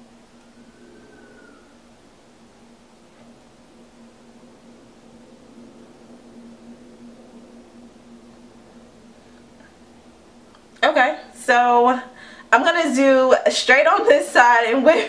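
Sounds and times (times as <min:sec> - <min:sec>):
faint hiss: 0:00.0 - 0:15.0
steady low hum: 0:00.0 - 0:15.0.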